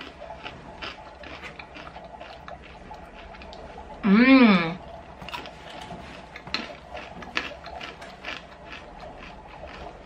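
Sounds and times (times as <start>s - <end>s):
chewing crunchy peanuts: 0.0s - 4.1s, 4.7s - 10.0s.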